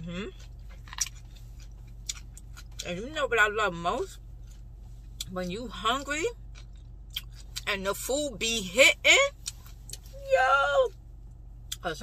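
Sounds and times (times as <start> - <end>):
person chewing food: 0.0 - 2.9, 4.3 - 5.3, 6.4 - 7.7
steady low hum: 0.0 - 12.0.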